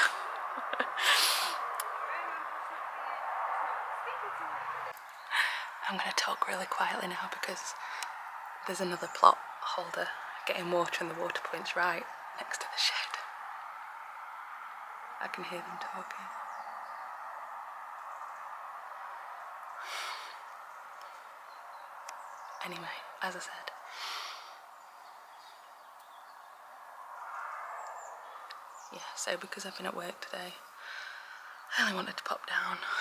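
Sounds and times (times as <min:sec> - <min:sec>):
outdoor background hiss: 0:00.0 - 0:33.0.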